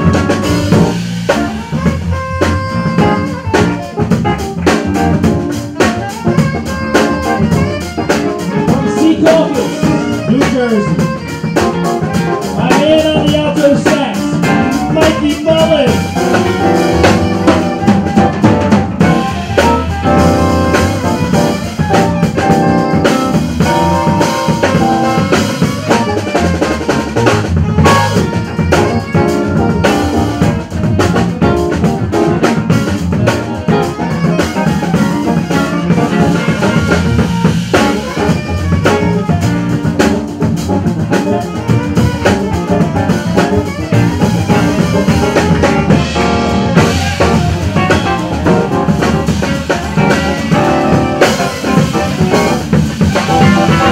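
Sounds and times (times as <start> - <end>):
alto saxophone solo: 0.0 - 53.9
live jazz band playing: 0.0 - 53.9.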